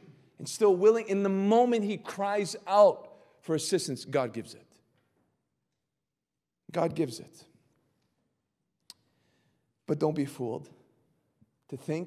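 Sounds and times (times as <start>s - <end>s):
man speaking: 0.0s - 4.6s, 6.7s - 7.5s, 9.8s - 10.8s, 11.6s - 12.0s.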